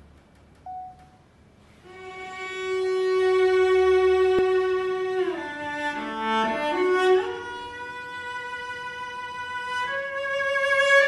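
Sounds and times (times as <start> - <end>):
cello bowing a long note: 1.8 - 11.0.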